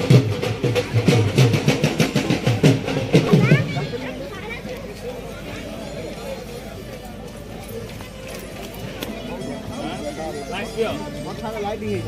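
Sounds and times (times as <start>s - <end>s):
sharp drum slaps: 0.0s - 3.6s
deep drum strokes: 0.0s - 4.0s.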